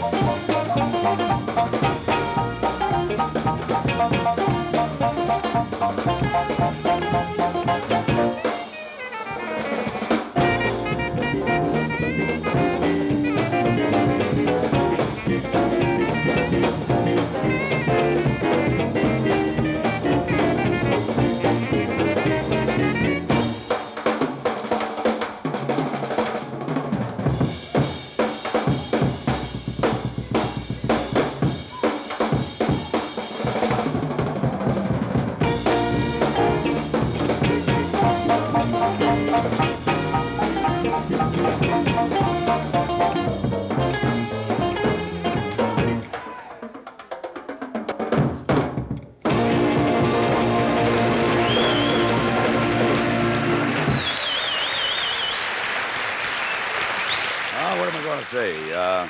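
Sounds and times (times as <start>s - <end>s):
tenor saxophone: 0.0s - 23.6s, 35.4s - 46.1s, 49.3s - 55.3s
bass guitar: 0.0s - 23.8s, 28.7s - 31.8s, 32.4s - 46.2s, 48.1s - 54.2s
electric guitars: 0.0s - 23.8s, 34.3s - 46.4s, 48.1s - 54.3s
trumpet: 0.0s - 23.8s, 35.4s - 46.6s, 49.2s - 55.5s
rapid snare and cymbal strokes: 0.0s - 54.2s
drum kit: 0.0s - 55.4s.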